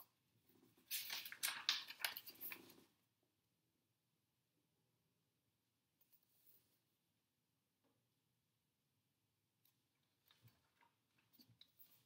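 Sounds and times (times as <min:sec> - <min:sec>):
book pages rustling: 0:00.7 - 0:02.9.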